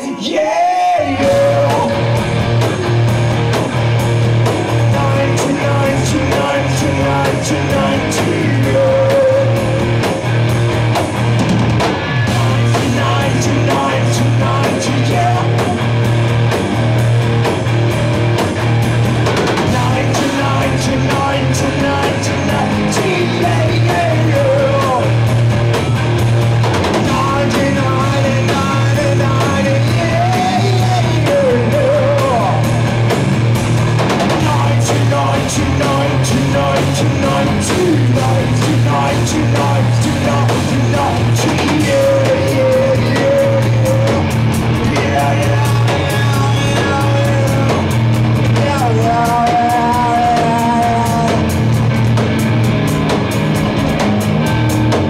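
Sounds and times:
person singing: 0.0 - 2.2, 4.8 - 10.1, 12.3 - 15.9, 19.7 - 25.2, 27.0 - 32.7, 34.4 - 51.6
bass guitar: 0.0 - 55.0
drum kit: 0.0 - 55.0
electric guitar: 0.0 - 55.0.

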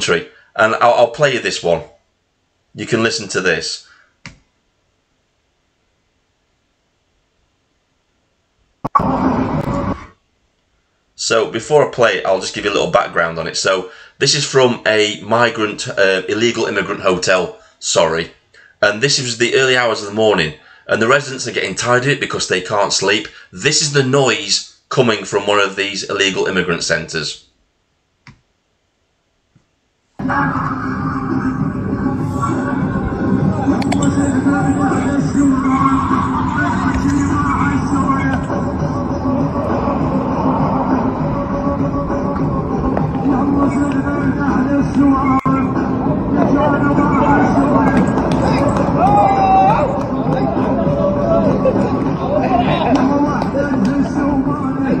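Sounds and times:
hubbub of voices: 30.2 - 55.0
loud music playing: 30.2 - 55.0
loud night-time commotion: 30.2 - 55.0.

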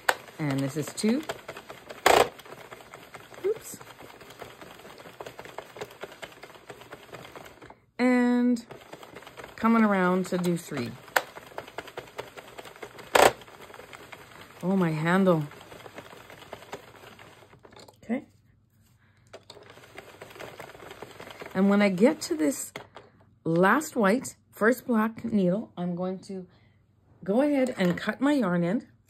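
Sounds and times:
knitting machine needles clicking: 0.0 - 18.0, 19.3 - 23.0.

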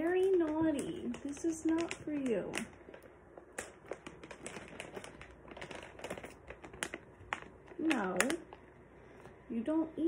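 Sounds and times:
plastic pouch crinkling: 0.0 - 9.4.

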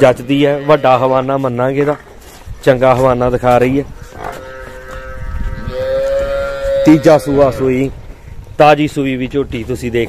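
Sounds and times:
cow mooing: 4.1 - 7.9.

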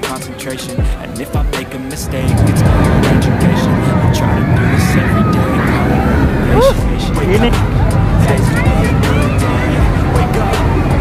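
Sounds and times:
background music: 0.0 - 11.0
roller coaster rumbling on track: 0.0 - 11.0.

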